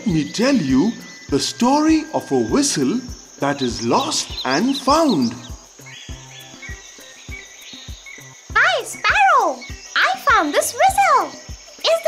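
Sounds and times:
high steady chirring: 0.0s - 12.0s
quiet background music: 0.0s - 12.0s.

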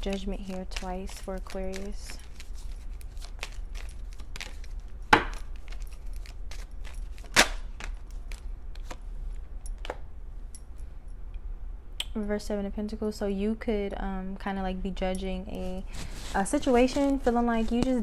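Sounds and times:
cards being shuffled: 0.0s - 9.0s, 15.8s - 18.0s.

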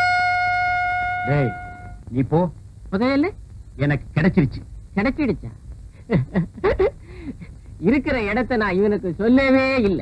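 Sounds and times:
trumpet long steady note: 0.0s - 2.1s.

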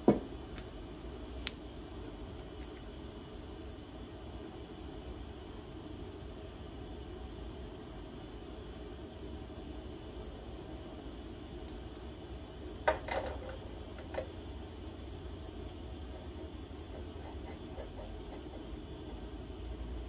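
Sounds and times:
low room hum: 0.0s - 20.0s
sharp metallic clink: 1.5s - 2.6s.

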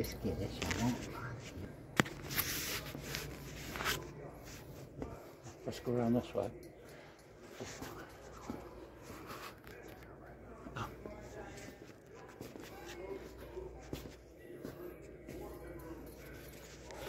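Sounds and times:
faint indistinct voices: 0.0s - 17.0s.

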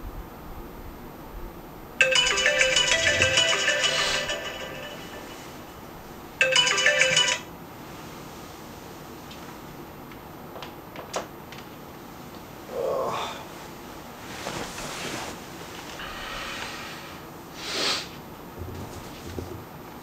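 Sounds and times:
smartphone alarm ringtone melody: 2.0s - 5.8s, 6.4s - 7.5s.

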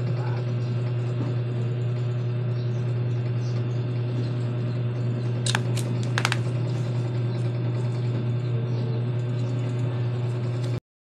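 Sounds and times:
loud low rattling hum: 0.0s - 10.8s.

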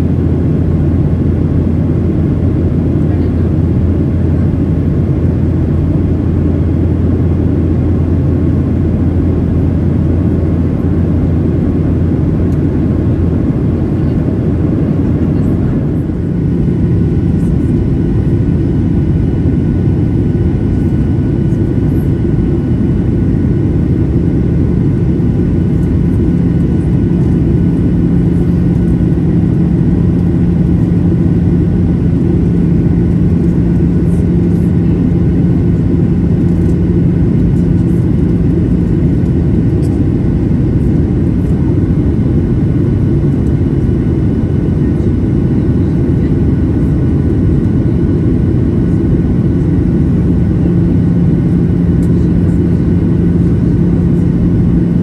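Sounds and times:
airplane cabin engine rumble: 0.0s - 55.0s
steady low hum: 0.0s - 55.0s.

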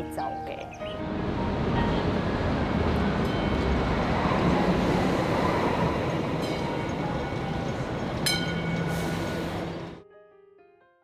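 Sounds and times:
train rumbling: 0.8s - 10.0s.

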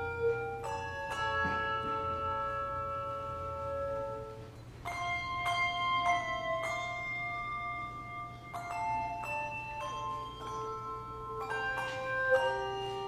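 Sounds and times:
handbell choir playing chords: 0.0s - 13.0s.

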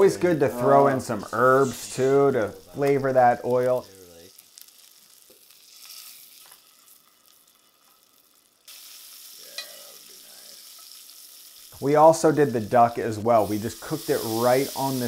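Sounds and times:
steak sizzling in a skillet: 0.0s - 15.0s.

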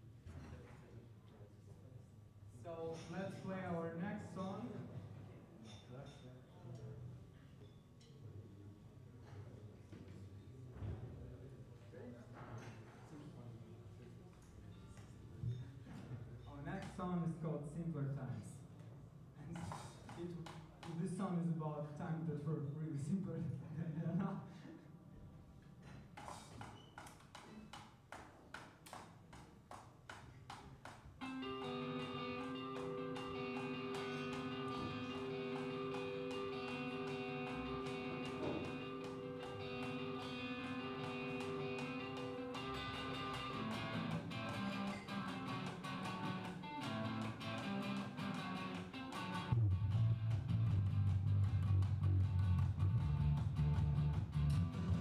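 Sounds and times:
live band playing: 31.2s - 55.0s
picked guitar notes: 31.2s - 55.0s.

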